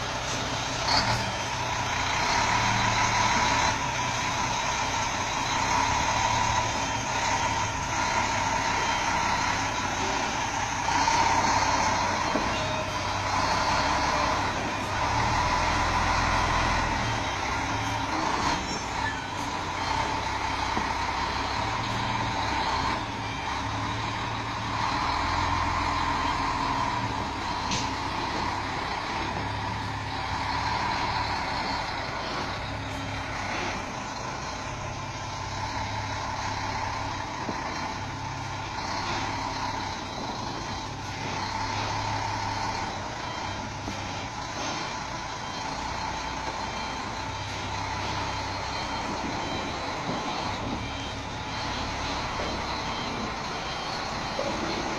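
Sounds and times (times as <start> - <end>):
diesel truck engine idling: 0.0 - 54.9
reversing alarm beeping: 0.0 - 54.9.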